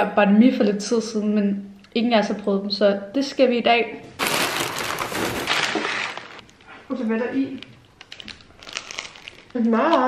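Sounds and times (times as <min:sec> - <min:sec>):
paper rustling and crinkling: 0:04.2 - 0:06.5, 0:08.0 - 0:09.6.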